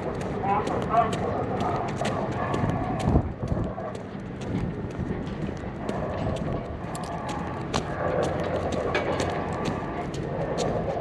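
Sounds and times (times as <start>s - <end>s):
low rumble: 0.0s - 11.0s.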